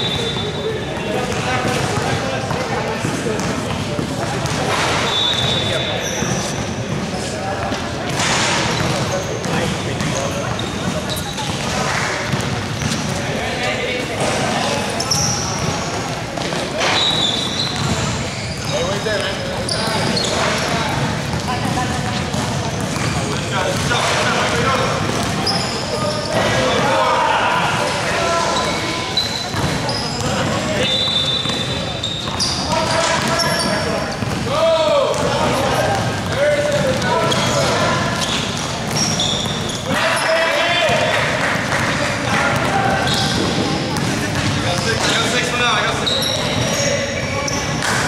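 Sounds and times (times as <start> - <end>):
players calling and shouting: 0.0 - 48.0
sneaker squeaks: 0.0 - 48.0
basketball bouncing on gym court: 0.9 - 13.3, 14.2 - 27.0, 28.6 - 40.1, 40.8 - 46.9.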